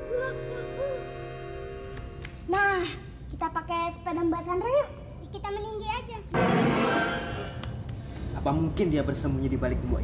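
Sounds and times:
background music with held tones: 0:00.0 - 0:02.3.

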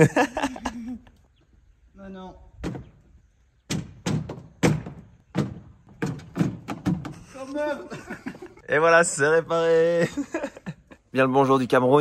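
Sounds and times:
sharp knocks on car underside: 0:03.6 - 0:07.2.

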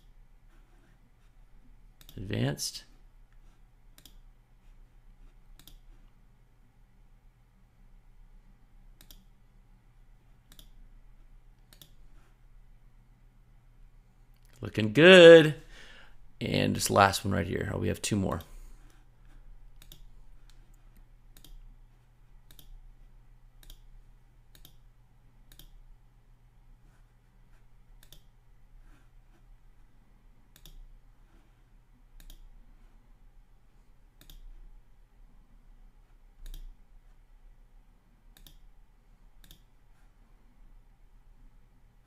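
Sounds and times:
faint low hum: 0:00.0 - 0:42.0
computer mouse clicks: 0:02.0 - 0:02.2, 0:03.3 - 0:04.3, 0:05.2 - 0:06.2, 0:08.9 - 0:09.4, 0:10.4 - 0:10.8, 0:11.6 - 0:12.1, 0:19.7 - 0:21.7, 0:22.4 - 0:22.8, 0:23.6 - 0:23.9, 0:24.5 - 0:24.8, 0:25.5 - 0:25.8, 0:28.0 - 0:28.4, 0:30.5 - 0:30.9, 0:32.2 - 0:32.6, 0:34.2 - 0:34.6, 0:36.4 - 0:37.2, 0:38.3 - 0:38.7, 0:39.4 - 0:39.8.

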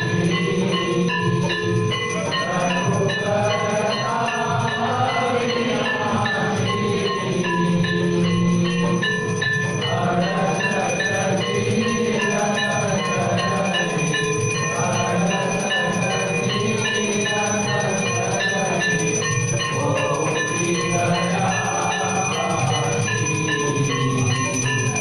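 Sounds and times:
temple bells and gongs clanging: 0:00.0 - 0:25.0.

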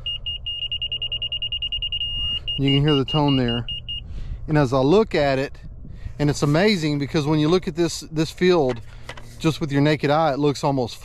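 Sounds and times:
high electronic beeps: 0:00.0 - 0:04.0.

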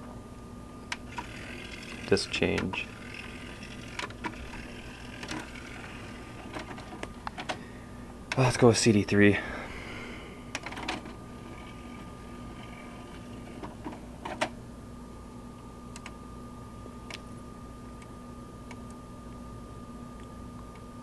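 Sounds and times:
faint electrical hum: 0:00.0 - 0:21.0
cd changer whirring: 0:00.6 - 0:21.0.

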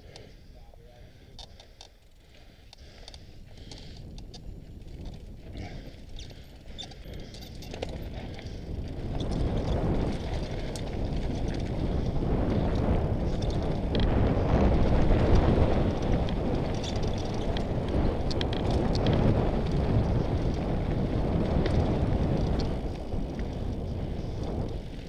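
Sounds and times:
bike rattling: 0:00.0 - 0:25.0
bike tyres crunching over stones: 0:01.4 - 0:25.0
wind rush on microphone: 0:02.5 - 0:25.0.

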